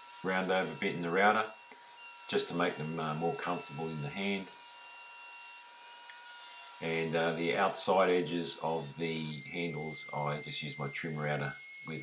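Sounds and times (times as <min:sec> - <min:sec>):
man talking: 0:00.2 - 0:01.5, 0:02.3 - 0:04.5, 0:06.8 - 0:12.0
thin high tones: 0:06.1 - 0:12.0.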